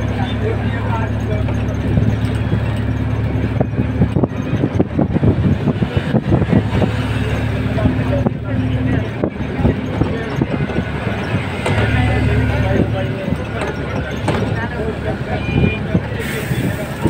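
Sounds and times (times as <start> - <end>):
road and engine noise in car: 0.0 - 17.0.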